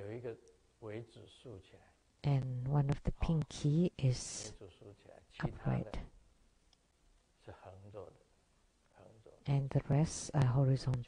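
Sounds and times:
man's voice murmuring: 5.4 - 6.0.

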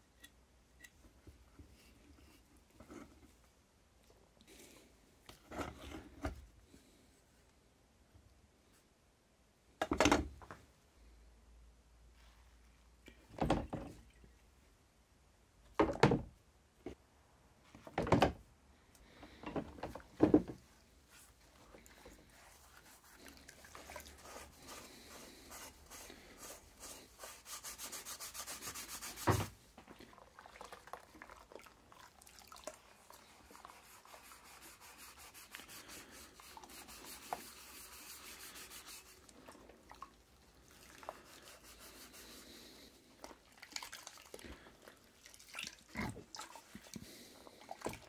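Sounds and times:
sponge scrubbing metal parts: 21.0 - 29.5, 32.9 - 39.5.

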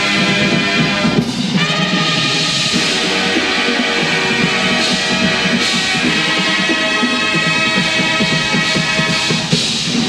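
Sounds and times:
brass bugles playing chords: 0.0 - 10.0
drums: 0.0 - 10.0.

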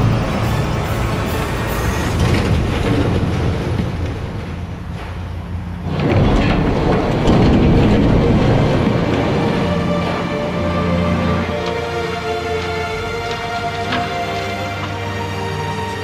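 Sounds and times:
soundtrack music: 0.0 - 2.7, 7.4 - 16.0
heavy metal crashing: 0.0 - 14.8
debris rattling and clattering: 0.0 - 16.0.

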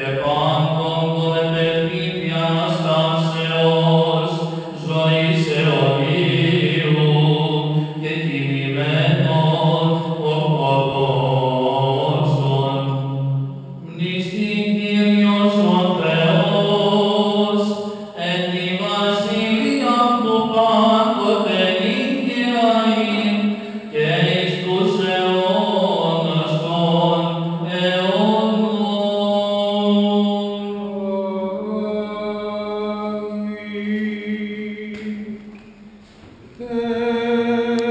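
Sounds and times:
man chanting: 0.0 - 35.4.

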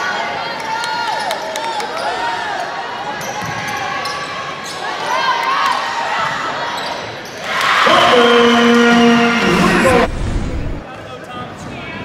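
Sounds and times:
people shouting: 7.8 - 10.8
gym horn: 7.9 - 10.8.

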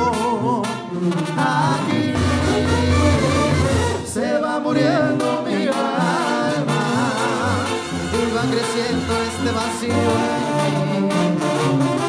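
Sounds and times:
sousaphone bass notes: 0.0 - 4.2
brass horns melody: 0.0 - 12.0.

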